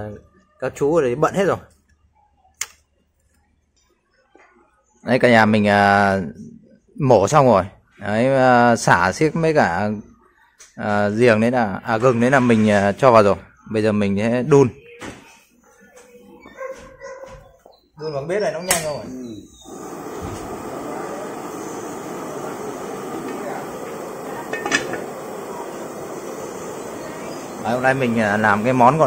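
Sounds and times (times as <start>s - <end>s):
dog barking faintly: 15.6s - 17.7s
faint hush: 19.6s - 29.0s.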